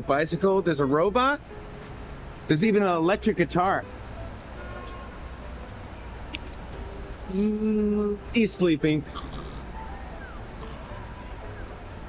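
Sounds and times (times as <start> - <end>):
low rumble of city traffic: 0.0 - 12.0.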